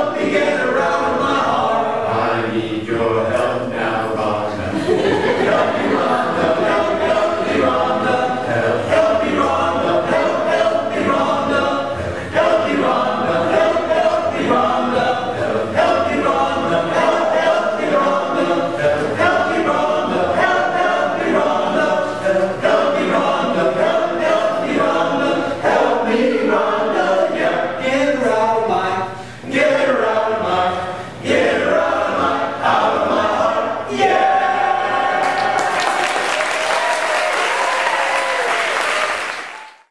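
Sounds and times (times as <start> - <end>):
men's a cappella chorus singing: 0.0 - 35.6.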